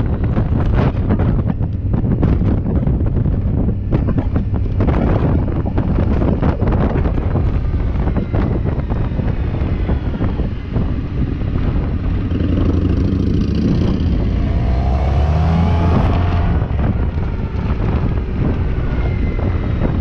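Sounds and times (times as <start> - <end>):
wind rumbling on microphone: 0.0 - 20.0
scooter engine accelerating: 4.1 - 20.0.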